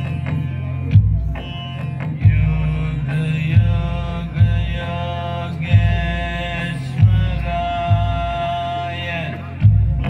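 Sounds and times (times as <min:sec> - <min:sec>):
sustained instrumental tones: 0:00.0 - 0:10.0.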